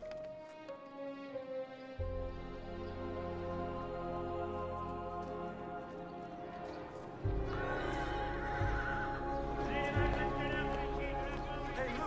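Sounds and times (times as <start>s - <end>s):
soft film score music: 0.0s - 12.0s.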